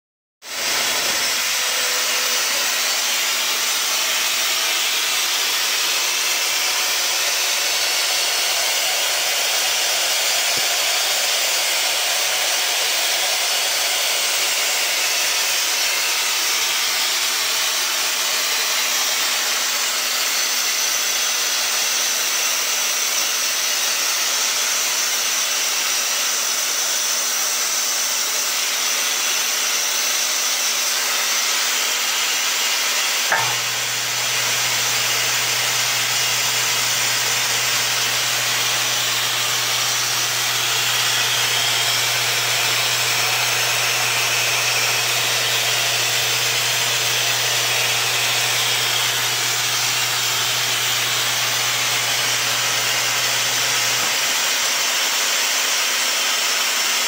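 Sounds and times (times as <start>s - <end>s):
metal lathe whirring: 0.5s - 57.0s.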